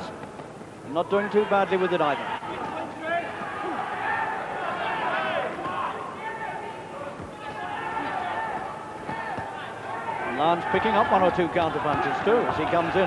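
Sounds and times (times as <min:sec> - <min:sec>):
crowd shouting: 0:01.1 - 0:13.0.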